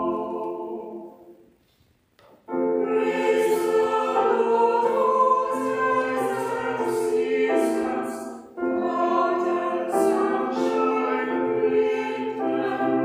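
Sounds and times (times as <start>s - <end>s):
piano accompaniment: 0.0s - 1.2s, 2.4s - 13.0s
small choir singing: 0.0s - 1.5s, 2.5s - 13.0s.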